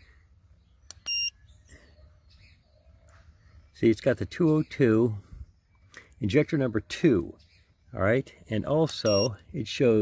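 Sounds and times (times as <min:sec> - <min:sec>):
short high beep: 0:01.0 - 0:01.3, 0:09.0 - 0:09.3.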